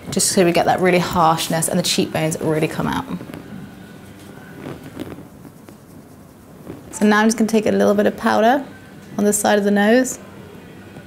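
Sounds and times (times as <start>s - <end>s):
makeup brush rustling on skin: 0.3s - 8.0s.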